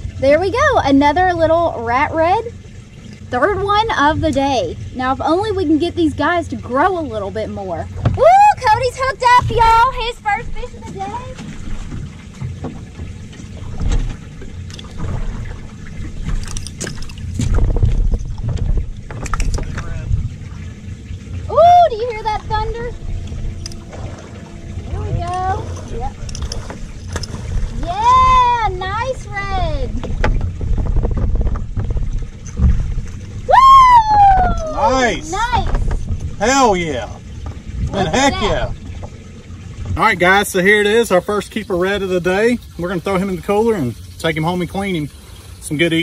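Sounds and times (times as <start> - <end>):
wind rumble on microphone: 15.0 - 40.0
people shouting excitedly: 33.5 - 35.6.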